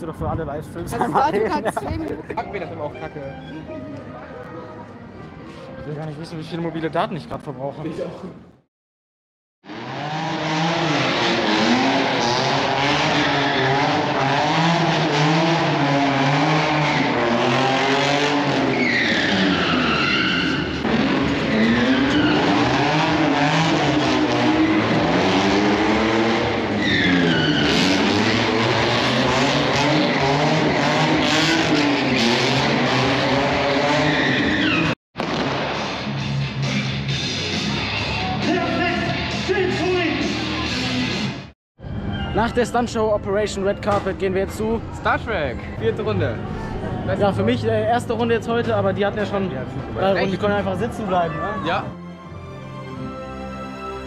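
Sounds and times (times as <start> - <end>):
car engines revving: 9.6 - 41.5
tyre squeals: 18.5 - 22.8, 26.7 - 28.2, 33.9 - 35.0.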